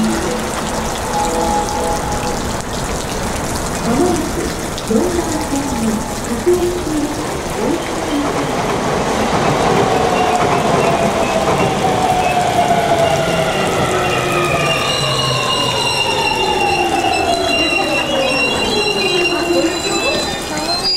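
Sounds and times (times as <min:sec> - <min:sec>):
high steady tones: 0:00.0 - 0:08.5.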